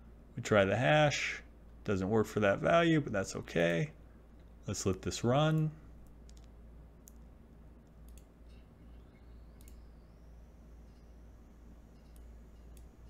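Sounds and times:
computer mouse clicks: 4.4s - 10.1s, 11.9s - 13.0s.

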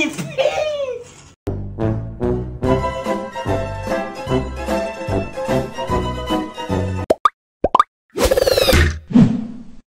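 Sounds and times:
quick rising bloops: 7.1s - 9.2s.

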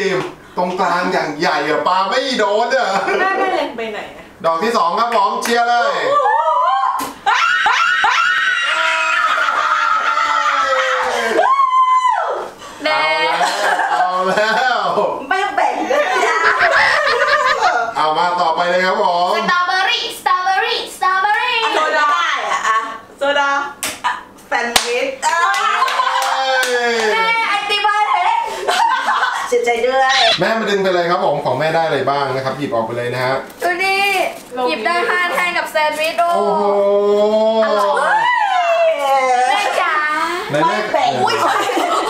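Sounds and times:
people screaming and laughing: 6.0s - 12.6s, 37.4s - 39.9s
women cheering: 6.0s - 13.2s, 25.2s - 28.5s, 37.6s - 40.2s
hand clapping: 24.7s - 27.1s.

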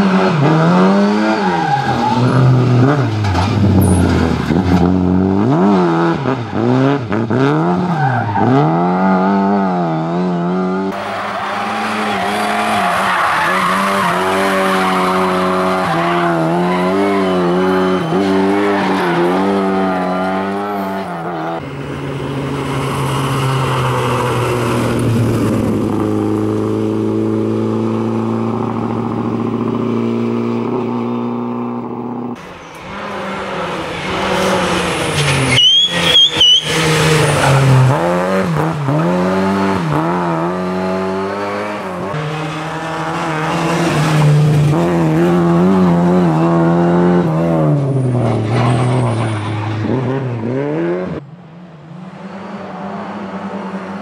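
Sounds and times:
rally car engine revving: 0.0s - 51.3s
tyre squeal: 11.0s - 21.5s, 34.1s - 37.8s, 47.8s - 50.0s.

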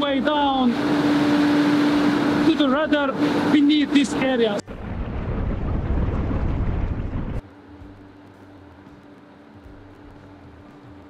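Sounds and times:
steady machinery hum: 0.0s - 11.0s
loud low machinery rumble: 0.1s - 11.0s.

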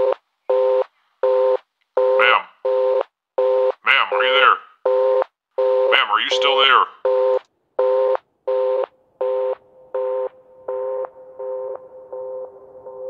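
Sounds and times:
telephone busy tone beeps: 0.5s - 13.0s
person speaking: 3.8s - 4.7s, 5.9s - 7.0s.

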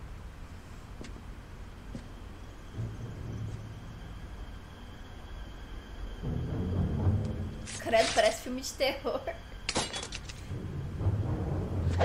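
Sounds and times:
low steady rumble: 0.0s - 7.9s, 8.8s - 12.0s.

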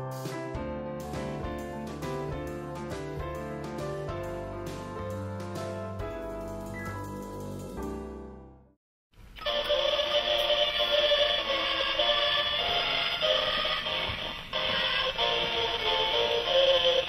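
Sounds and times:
tinny electronic singing with music: 9.4s - 17.0s.

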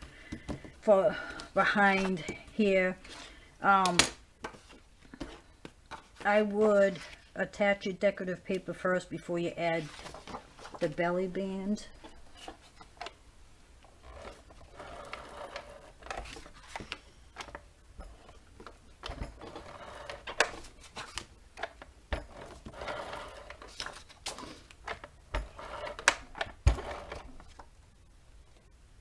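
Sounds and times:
paper rustling and sliding: 9.8s - 10.8s, 14.9s - 17.1s, 19.4s - 21.3s, 22.5s - 25.0s.

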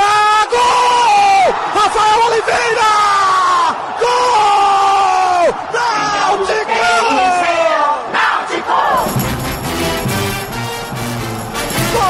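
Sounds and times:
music jingle with steady beat: 9.0s - 12.0s
commentator's long goal shout: 11.7s - 12.0s.

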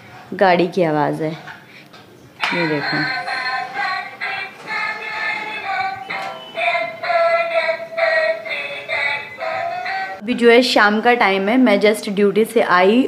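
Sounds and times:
synthesized singing voice: 2.4s - 10.2s
toy car electronic tune: 4.3s - 10.2s.

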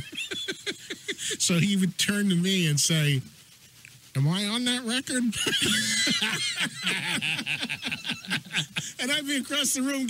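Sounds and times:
men laughing: 0.0s - 1.6s, 5.3s - 9.2s.

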